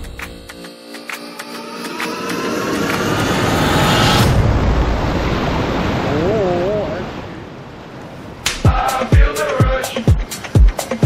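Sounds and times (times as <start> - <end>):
rushing noise: 1.6 - 7.8.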